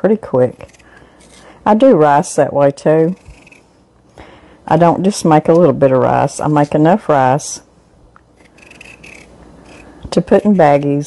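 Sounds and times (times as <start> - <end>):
knife scraping potato skin: 0.4 - 1.6, 3.0 - 3.7, 8.4 - 11.0.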